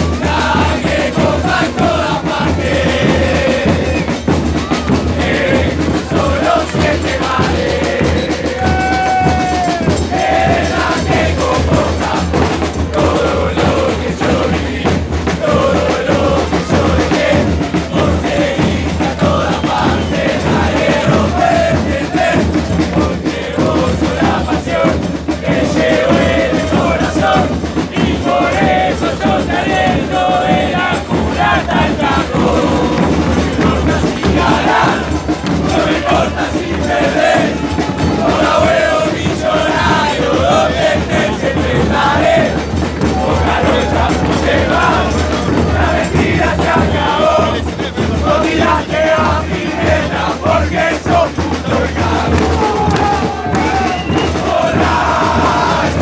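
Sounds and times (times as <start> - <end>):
crowd chanting: 0.0 - 56.0.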